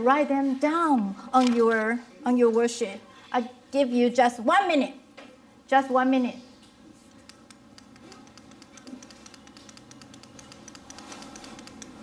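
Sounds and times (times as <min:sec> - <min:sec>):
pens scratching on paper: 0:08.0 - 0:12.0.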